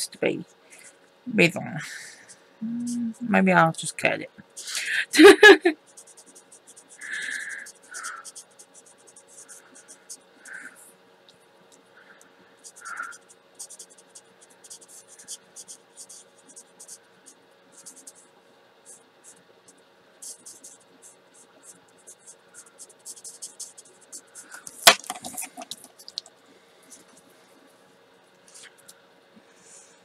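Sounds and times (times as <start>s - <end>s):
marker scratching on paper: 5.9s - 10.6s, 12.6s - 17.0s, 17.8s - 18.3s, 20.2s - 26.2s.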